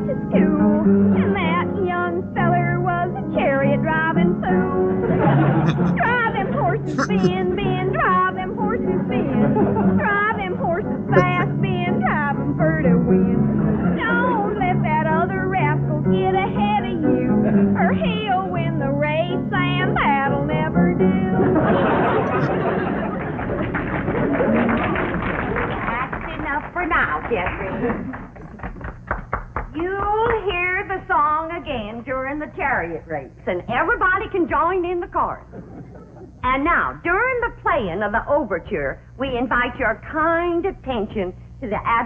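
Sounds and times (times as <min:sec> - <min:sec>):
woman singing: 0:00.0 - 0:05.0, 0:06.0 - 0:21.6
applause: 0:22.7 - 0:30.4.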